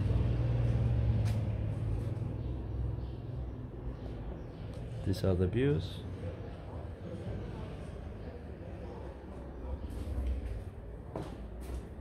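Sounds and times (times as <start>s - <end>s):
vehicle engine running: 0.0s - 4.7s.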